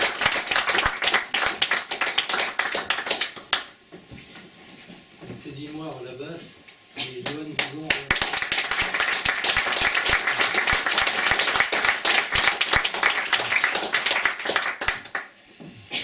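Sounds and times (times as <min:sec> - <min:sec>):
audience applauding: 0:00.0 - 0:03.8, 0:07.2 - 0:15.4.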